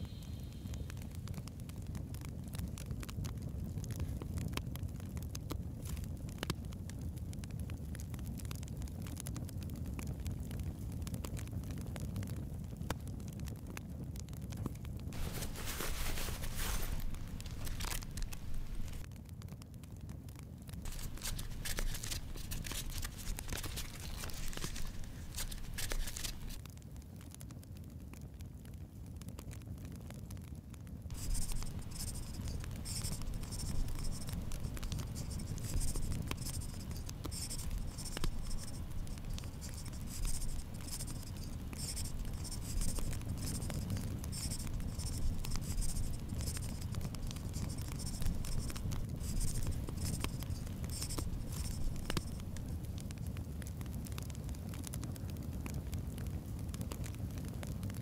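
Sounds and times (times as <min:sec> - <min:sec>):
notebook pages rustling: 0:15.2 - 0:19.0, 0:20.9 - 0:26.6, 0:31.1 - 0:52.7
pen scratching on paper: 0:15.2 - 0:19.0, 0:20.9 - 0:26.6, 0:31.1 - 0:52.6
steady low hum: 0:15.2 - 0:19.0, 0:20.9 - 0:26.6, 0:31.1 - 0:52.8.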